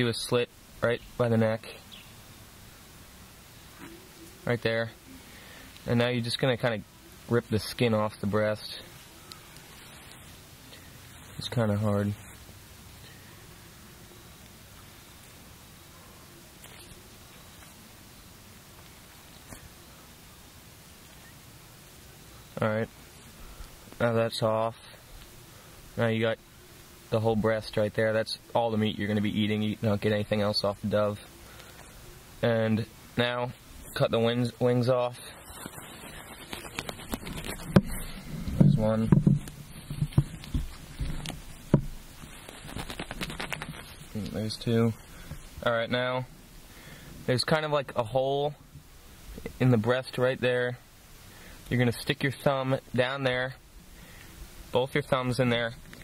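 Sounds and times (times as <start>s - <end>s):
background hiss: 0.0s - 56.0s
feathers rustling: 8.4s - 12.7s, 33.6s - 45.6s
small crackling clicks: 35.5s - 38.1s, 39.4s - 44.4s, 55.8s - 56.0s.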